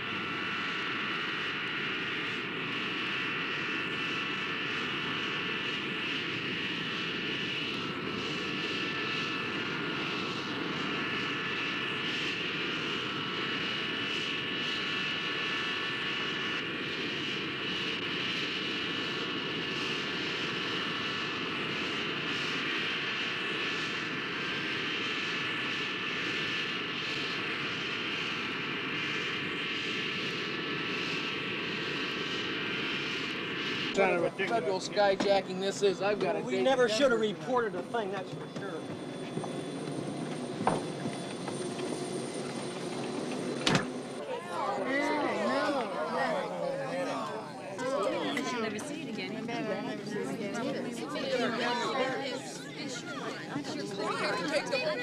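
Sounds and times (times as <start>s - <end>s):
jet turbine engines running: 0.0s - 55.0s.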